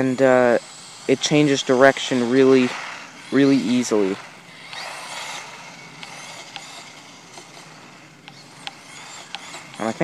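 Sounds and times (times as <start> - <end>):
rc car motor and tyres hissing: 0.0 - 10.0
faint ticks: 4.6 - 9.9.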